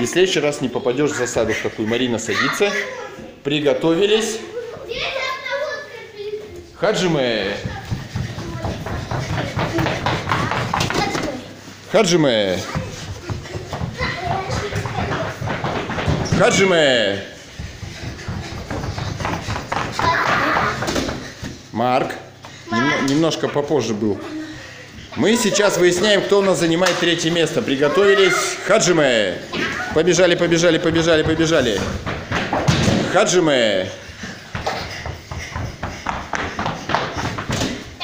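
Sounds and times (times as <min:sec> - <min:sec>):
children's voices: 0:00.9 - 0:03.4, 0:04.2 - 0:11.8, 0:12.5 - 0:16.6, 0:17.4 - 0:21.4, 0:22.5 - 0:23.3, 0:24.0 - 0:31.8
children running on carpet: 0:06.3 - 0:21.7, 0:24.1 - 0:38.0
thuds on gym mats: 0:31.3 - 0:33.2.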